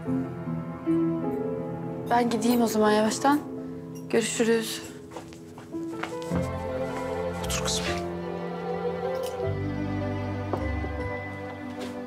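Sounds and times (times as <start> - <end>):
faint footsteps: 4.9 - 8.1, 10.5 - 12.0.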